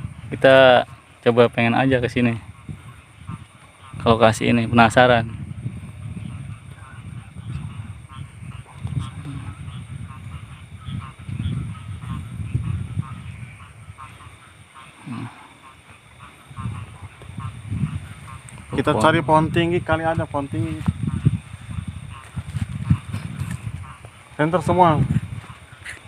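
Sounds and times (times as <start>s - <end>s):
frogs croaking: 0.0s - 26.0s
high insect trill: 0.0s - 26.0s.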